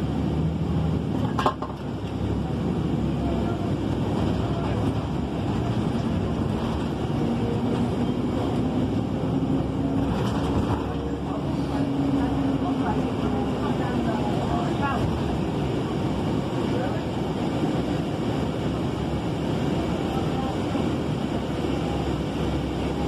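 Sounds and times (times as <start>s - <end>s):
bus engine and road noise: 0.0s - 23.0s.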